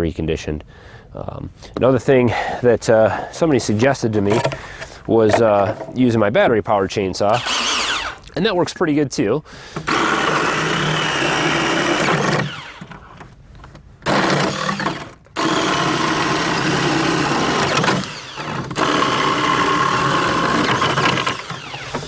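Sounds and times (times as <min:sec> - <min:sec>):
electric chainsaw sawing wood: 0:07.4 - 0:08.2, 0:09.8 - 0:13.0, 0:14.0 - 0:22.0.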